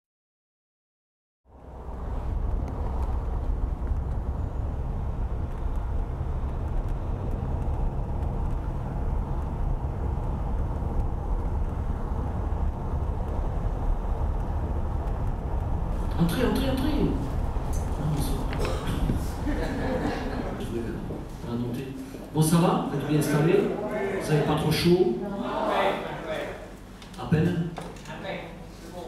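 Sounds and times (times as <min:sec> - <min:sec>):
car engine and road noise: 0:01.5 - 0:21.6.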